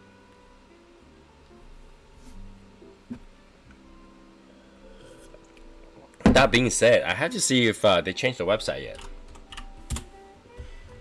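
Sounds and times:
faint background music: 0.0 - 11.0
computer keyboard typing clicks: 8.9 - 10.1.

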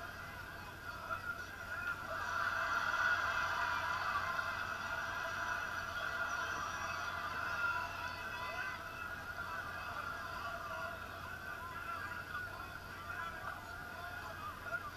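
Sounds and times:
crowd shouting and cheering: 1.1 - 14.9.

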